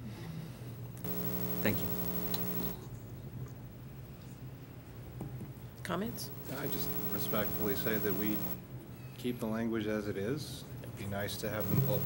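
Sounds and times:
electrical buzz: 1.0s - 2.8s, 6.2s - 8.6s, 11.6s - 12.0s
faint low hum: 1.0s - 3.3s, 5.9s - 8.6s, 11.1s - 12.0s.

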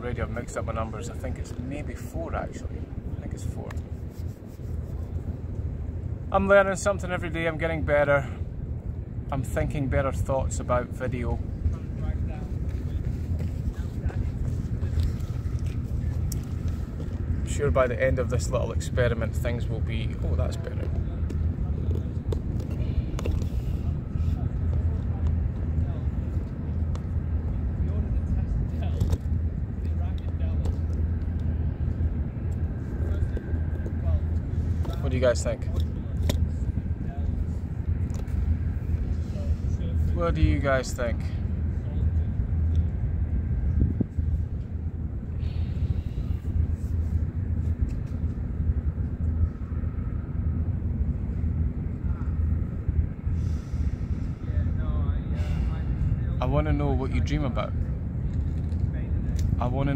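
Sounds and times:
low outdoor rumble: 0.0s - 59.9s
wind buffeting microphone: 0.0s - 59.9s.

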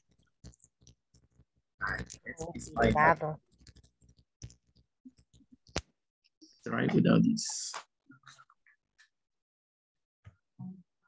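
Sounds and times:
faint scattered clicks: 3.4s - 5.9s.

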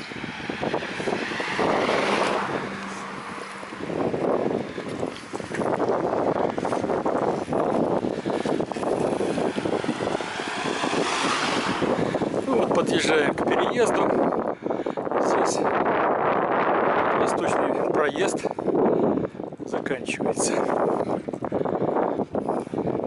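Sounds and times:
wind rushing over microphone: 0.0s - 23.0s.

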